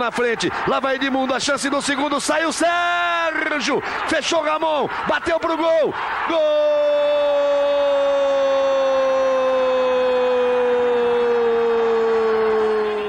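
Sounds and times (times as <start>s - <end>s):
male commentator's drawn-out goal call: 0.0s - 13.0s.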